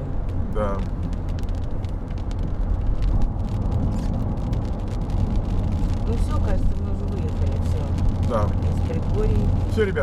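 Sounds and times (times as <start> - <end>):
car road noise rumble: 0.0 - 10.0.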